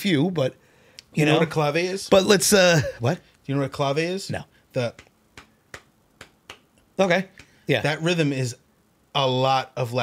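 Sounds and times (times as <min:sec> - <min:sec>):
finger snaps: 0:04.9 - 0:07.6.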